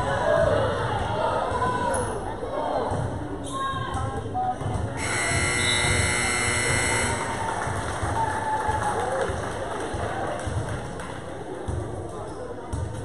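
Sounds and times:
crowd chatter: 0.0s - 13.0s
scoreboard buzzer: 5.0s - 7.4s.

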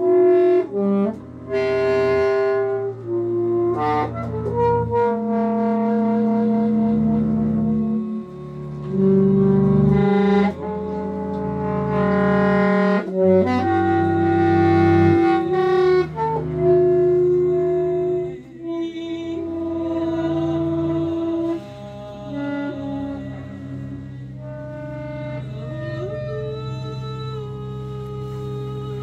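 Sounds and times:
alto saxophone long notes: 0.0s - 29.0s
bowed double bass: 0.0s - 29.0s
woman singing sustained tones: 17.4s - 29.0s.

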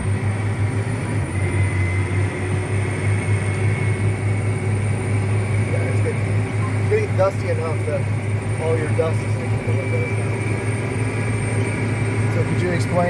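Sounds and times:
tractor engine drone: 0.0s - 13.0s.

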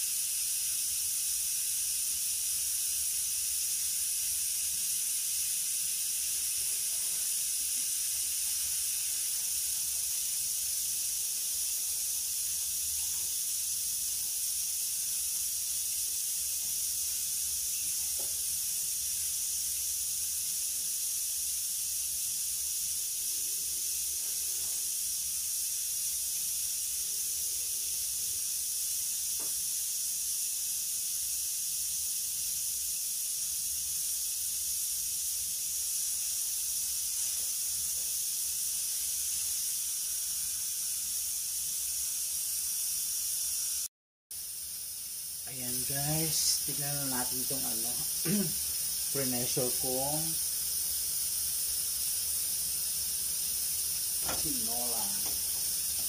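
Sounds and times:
pressure cooker hissing steam: 0.0s - 56.0s.

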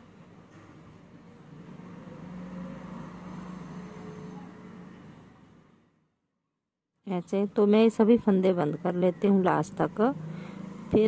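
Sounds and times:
low engine-like hum: 0.0s - 6.1s, 7.2s - 11.0s.

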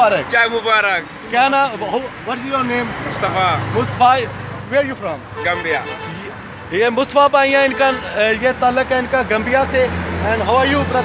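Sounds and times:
men speaking: 0.0s - 11.0s.

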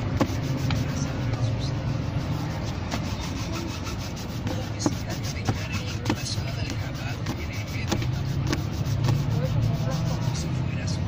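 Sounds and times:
motor vehicle rumble: 0.0s - 11.0s.

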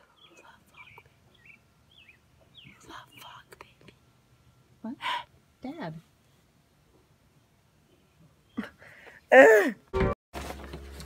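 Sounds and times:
faint whispering: 0.0s - 1.1s, 2.7s - 4.0s
bird chirps: 0.1s - 3.4s.

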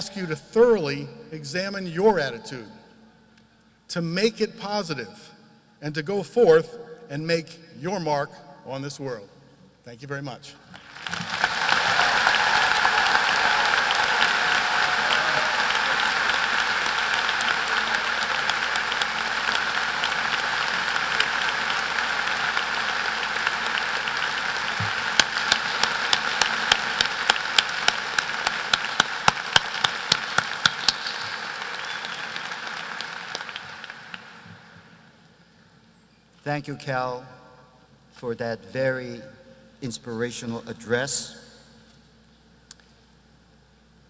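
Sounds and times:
sharp claps: 10.7s - 35.0s
crowd applauding: 10.7s - 35.1s.

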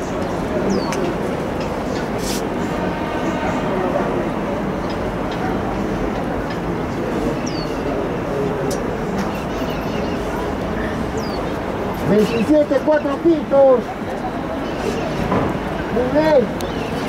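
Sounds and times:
indistinct background voices: 0.0s - 17.0s
steady ambient noise: 0.0s - 17.0s.

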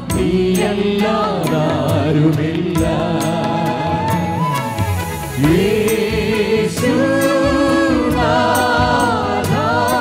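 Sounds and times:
women singing together: 0.0s - 4.1s, 5.4s - 10.0s
live band with steady drumbeat: 0.0s - 10.0s.

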